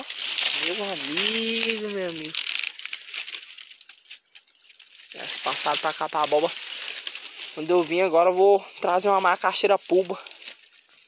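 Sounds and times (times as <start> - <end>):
dry leaves rustling: 0.0 - 11.0
footsteps crunching on leaves: 0.0 - 11.0.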